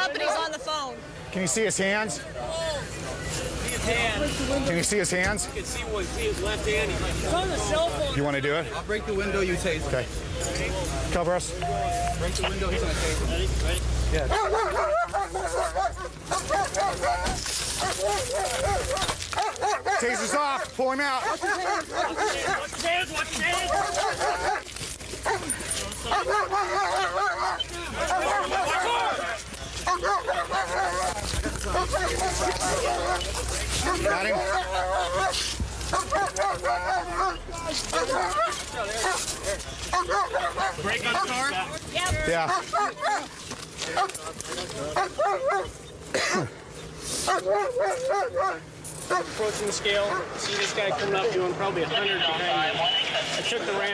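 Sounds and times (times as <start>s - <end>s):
dog barking rapidly: 14.3s - 22.8s, 23.5s - 29.2s, 29.8s - 31.2s, 31.8s - 41.5s, 42.4s - 43.3s, 45.0s - 45.8s, 47.3s - 49.4s, 50.0s - 50.4s.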